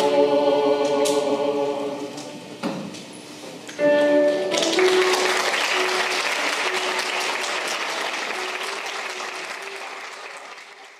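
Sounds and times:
sustained instrumental notes: 3.8 - 10.3
audience applause: 4.5 - 10.9.

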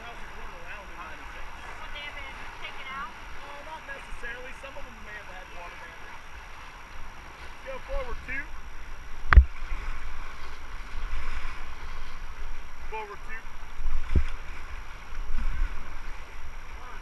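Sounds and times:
wind rumble on microphone: 13.5 - 17.0.

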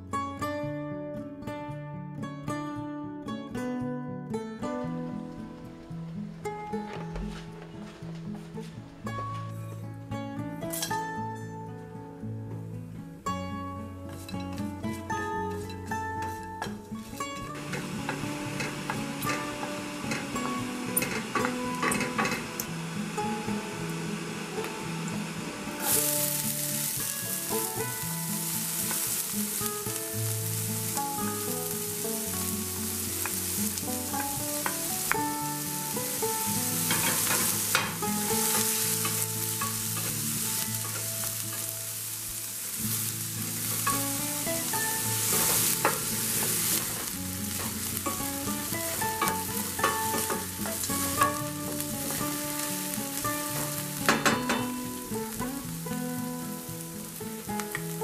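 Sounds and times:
soft background music: 0.0 - 58.0
onions sizzling in oil: 14.1 - 58.0
wooden spoon knocking pan: 53.6 - 54.8.

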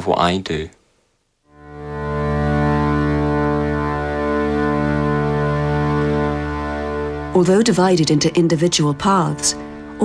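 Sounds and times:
low musical drone: 1.5 - 10.0.

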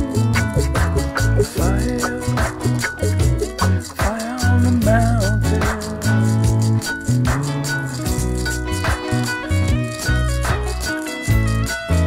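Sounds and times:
bass line: 0.0 - 12.0
electric guitar playing: 0.0 - 12.0
shaker-like percussion: 0.0 - 12.0.

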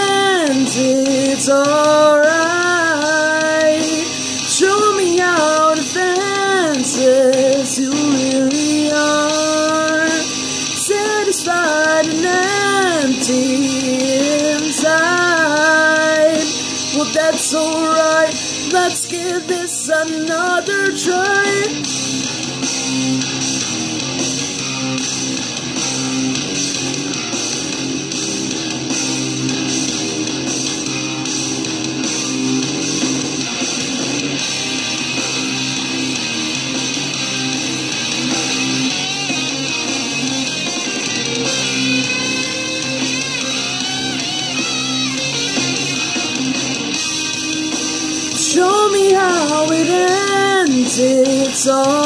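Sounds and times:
bass guitar: 0.0 - 52.0
distorted electric guitars: 0.0 - 52.0
instrumental rock music: 0.0 - 52.0.

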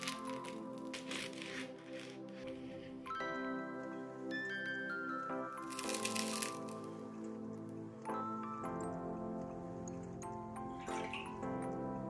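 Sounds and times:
bread crust crackling: 0.0 - 3.1, 5.6 - 7.7
background music: 0.0 - 12.0.

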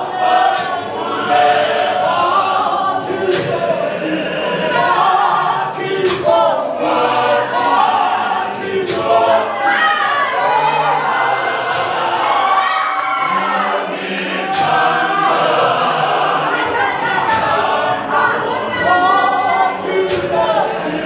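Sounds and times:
women's choir singing a hymn: 0.0 - 21.0.

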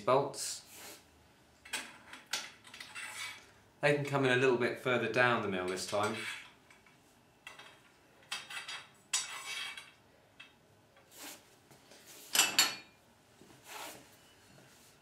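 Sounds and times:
metal bolts clinking and scraping: 5.7 - 10.6.

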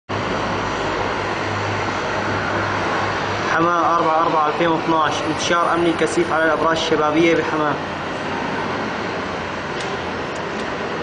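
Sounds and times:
dense rushing noise: 0.1 - 11.0
engine drone: 0.1 - 11.0.

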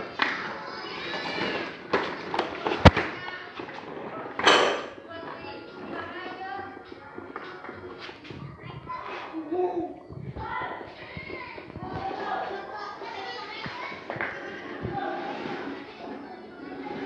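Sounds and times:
voices: 0.0 - 17.0.

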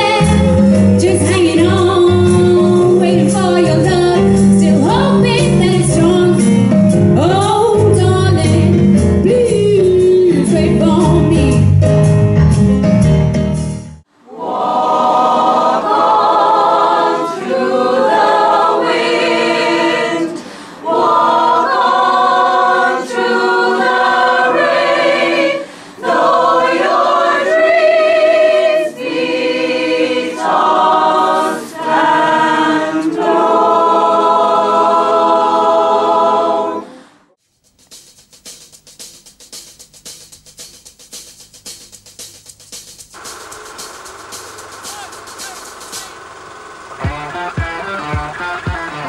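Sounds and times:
mixed choir singing unaccompanied: 0.0 - 4.1, 14.2 - 37.0
electric guitar chord ringing: 46.9 - 49.0.

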